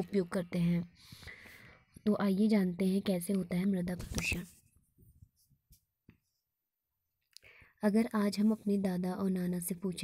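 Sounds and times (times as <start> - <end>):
woman speaking: 0.0 - 1.0, 2.0 - 4.6, 7.8 - 10.0.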